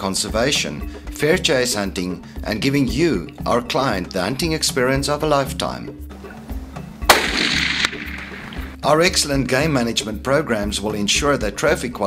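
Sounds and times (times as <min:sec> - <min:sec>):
background music: 0:00.0 - 0:12.0
rifle shot: 0:07.1 - 0:08.8.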